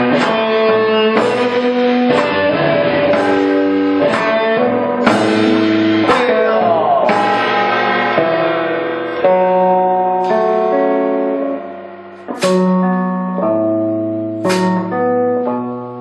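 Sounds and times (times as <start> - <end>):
live rock band playing: 0.0 - 16.0
sharp drum or cymbal hits: 3.1 - 9.1, 12.1 - 12.8, 14.4 - 15.0.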